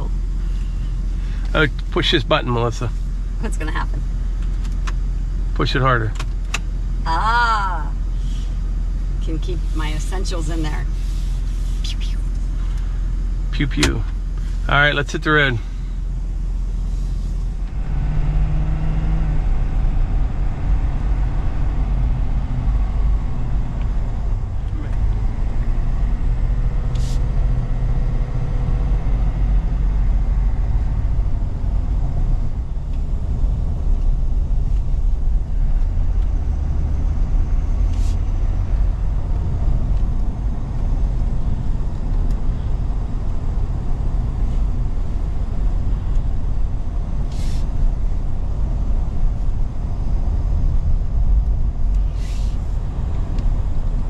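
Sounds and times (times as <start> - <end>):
engine and tyre rumble in cab: 0.0 - 54.0.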